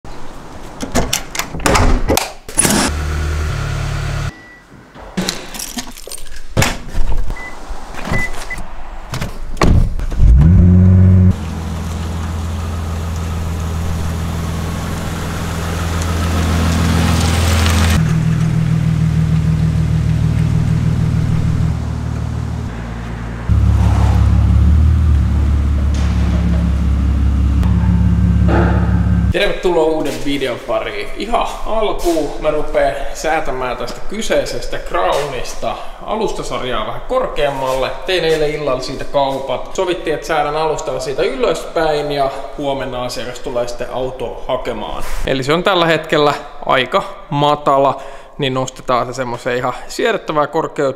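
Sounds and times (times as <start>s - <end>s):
car engine idling: 11.2s - 29.4s.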